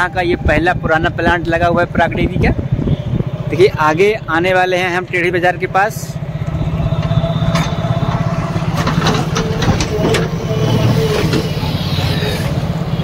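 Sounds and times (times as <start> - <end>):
street traffic: 0.0 - 13.0
vehicle engine running: 0.3 - 13.0.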